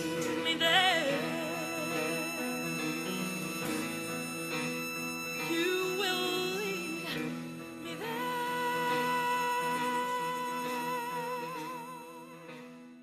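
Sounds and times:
woman singing with vibrato: 0.0 - 4.1, 5.3 - 12.6
instrumental accompaniment: 0.0 - 12.9.

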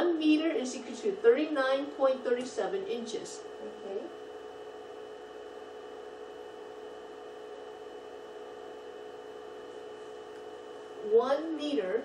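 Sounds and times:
faint constant tones: 0.0 - 12.0
room hum and hiss: 0.0 - 12.0.

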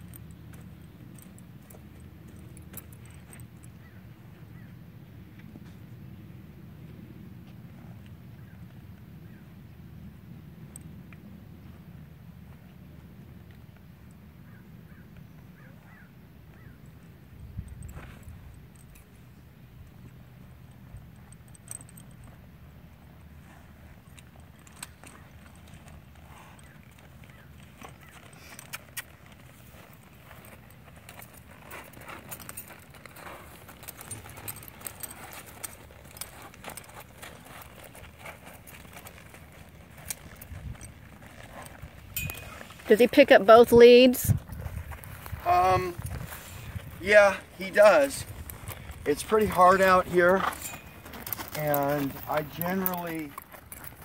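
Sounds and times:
horse tack jingling: 0.0 - 4.2, 15.9 - 54.0
soft hoof steps on dirt: 0.0 - 6.2, 10.7 - 54.0.

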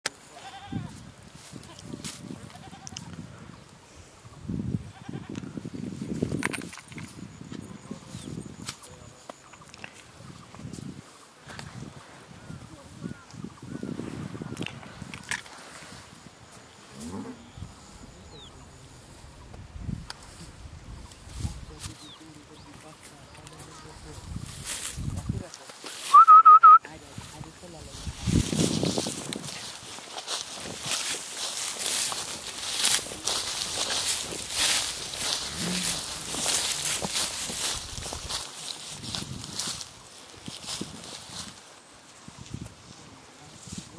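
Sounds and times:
short whistled notes: 26.1 - 26.9.

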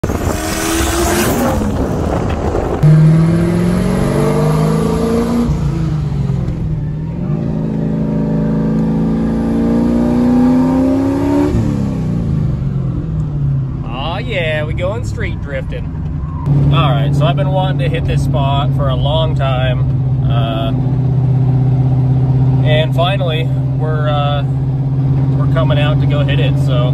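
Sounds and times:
truck engine pulling hard: 0.0 - 26.9.

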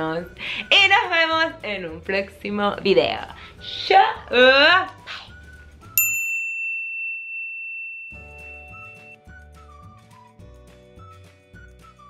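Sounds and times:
high bell ding: 6.0 - 9.2.

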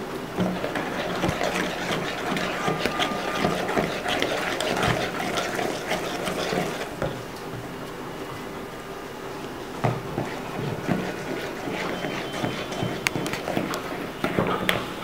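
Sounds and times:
whisk beating batter in bowl: 0.3 - 7.1, 10.1 - 14.7.

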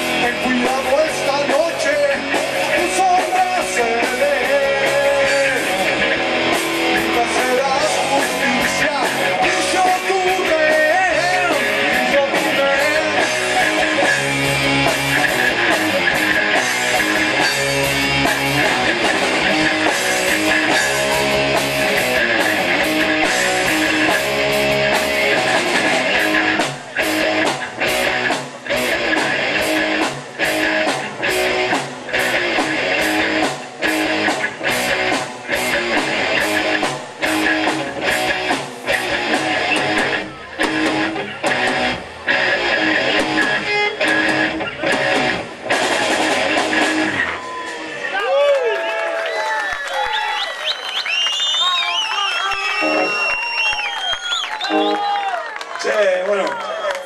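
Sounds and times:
live rock band playing: 0.0 - 48.3, 52.4 - 55.6.

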